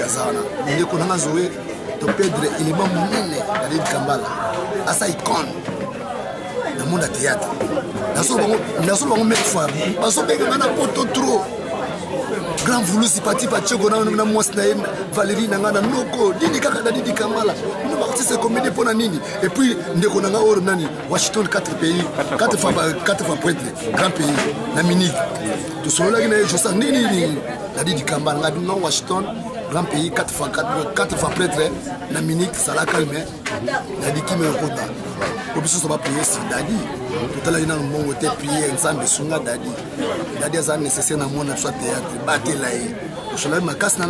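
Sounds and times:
voices talking: 0.0s - 44.0s.

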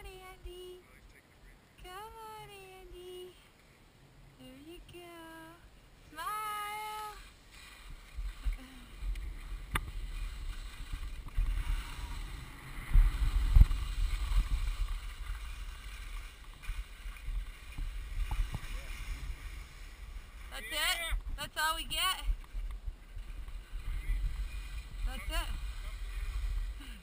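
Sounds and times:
skis sliding over snow: 6.0s - 27.0s
wind rumbling on microphone: 6.5s - 27.0s.

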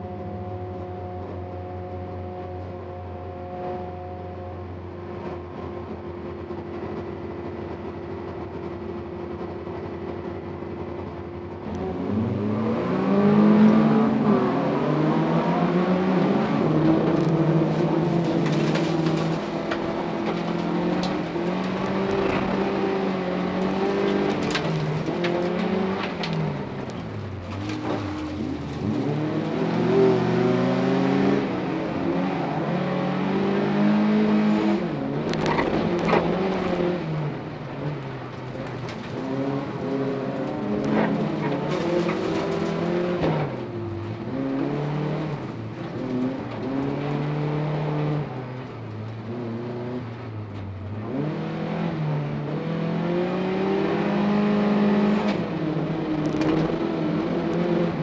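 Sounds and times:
car engine revving: 11.6s - 58.0s.

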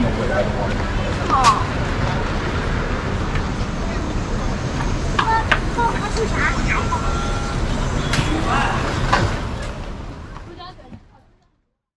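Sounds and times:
people talking: 0.0s - 2.4s, 3.0s - 11.6s
traffic rumble: 0.0s - 11.8s.

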